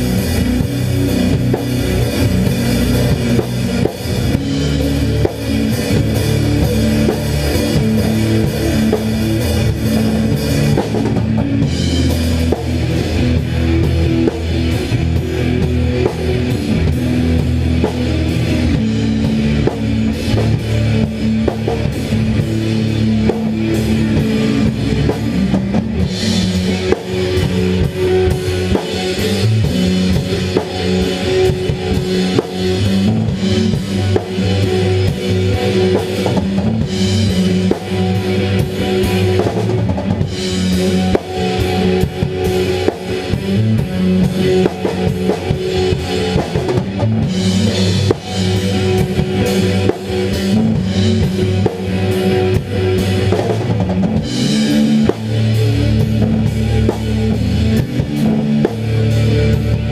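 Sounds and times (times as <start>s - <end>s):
bass guitar: 0.0s - 59.9s
drum kit with cymbals: 0.0s - 59.9s
electric guitar: 0.0s - 59.9s.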